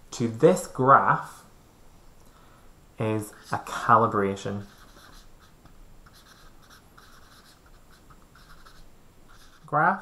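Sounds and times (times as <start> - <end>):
marker scratching on whiteboard: 3.2 - 3.9, 4.5 - 10.0.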